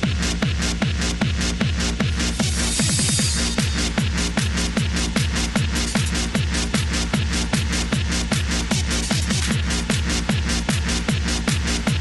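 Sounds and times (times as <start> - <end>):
hard kick drum: 0.0 - 12.0
hardstyle dance music: 0.0 - 12.0.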